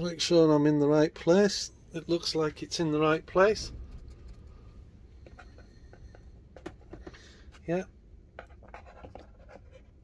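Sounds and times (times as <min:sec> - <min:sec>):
paper model scratching: 0:08.4 - 0:10.0.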